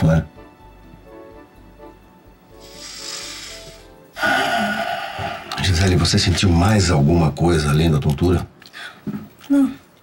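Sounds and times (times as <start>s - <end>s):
soft background music: 0.0s - 8.6s.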